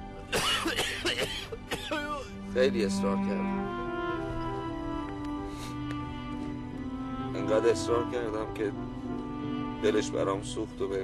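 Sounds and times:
background music: 0.0s - 11.0s
man coughing: 0.3s - 2.4s.

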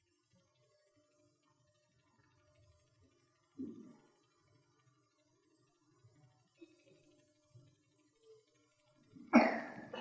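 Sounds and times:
person coughing: 9.4s - 10.0s.

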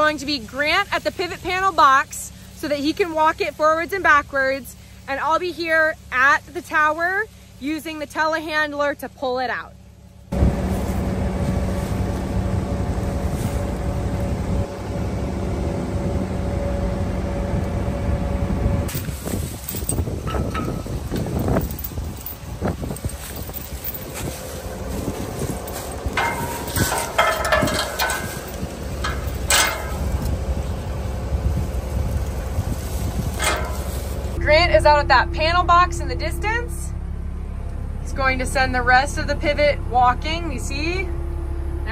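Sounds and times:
diesel engine running: 0.0s - 41.9s
wind buffeting microphone: 10.3s - 36.6s
metal clinks and knocks: 18.9s - 30.8s, 33.3s - 34.4s.

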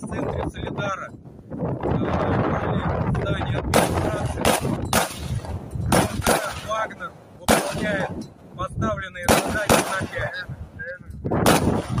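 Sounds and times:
gunshot blast: 3.7s - 6.8s, 7.5s - 8.1s, 9.3s - 10.3s, 11.4s - 12.0s
rolling echo noise: 9.2s - 12.0s.

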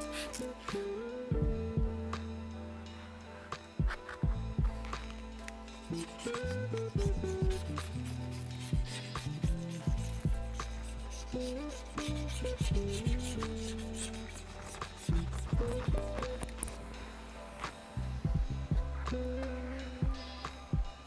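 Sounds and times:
razor blade scraping wet glass: 0.0s - 0.5s, 5.9s - 15.5s
background music with bass line: 0.0s - 21.0s.

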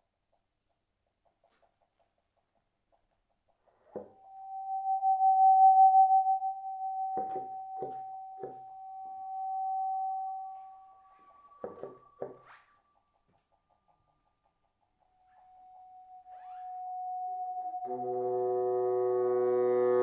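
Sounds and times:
higher electronic tone bending upward: 4.0s - 12.3s, 15.2s - 20.0s
bassoon sustained high tone: 4.1s - 12.0s, 15.3s - 20.0s.

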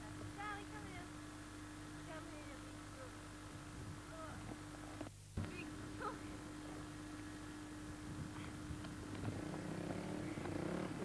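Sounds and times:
faint outdoor background: 0.0s - 11.0s
steady electrical hum: 0.0s - 11.0s.

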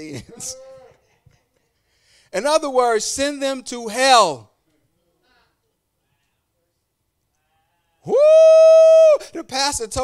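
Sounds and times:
man shouting into a microphone: 8.0s - 10.0s.

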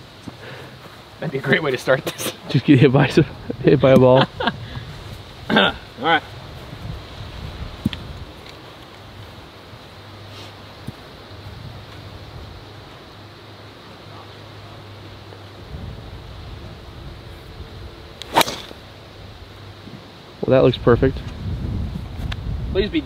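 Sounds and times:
golf club striking ball: 18.2s - 18.8s.

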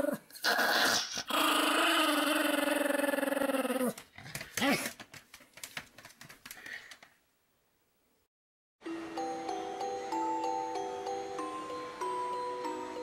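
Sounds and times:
dog growling: 0.0s - 4.0s.

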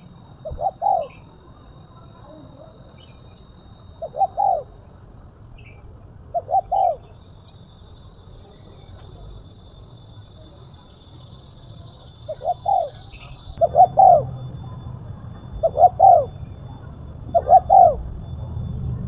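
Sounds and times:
dove cooing: 0.4s - 1.2s, 4.0s - 4.7s, 6.3s - 7.1s, 12.3s - 14.3s, 15.6s - 16.4s, 17.3s - 18.2s.

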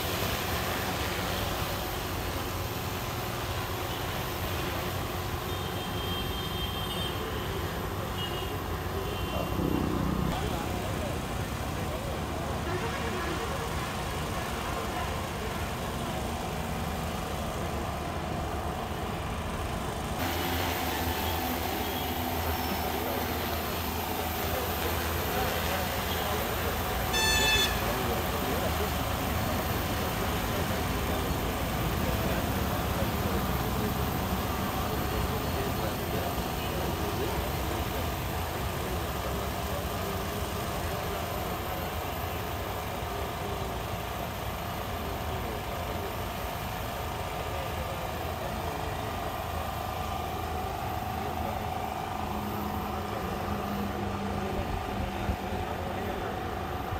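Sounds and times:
steady mechanical hum: 0.0s - 56.9s
group of people talking: 7.0s - 56.9s
short pitched beep: 27.1s - 27.8s.

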